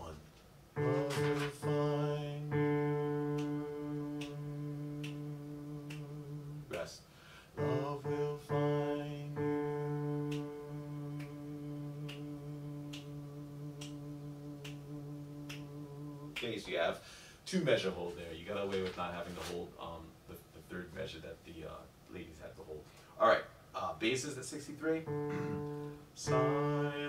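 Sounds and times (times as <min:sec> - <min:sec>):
electronic keyboard sustained chords: 0:00.8 - 0:06.4, 0:07.6 - 0:13.3, 0:25.0 - 0:27.0
man singing tenor line: 0:00.8 - 0:07.0, 0:07.6 - 0:16.5, 0:25.1 - 0:27.0.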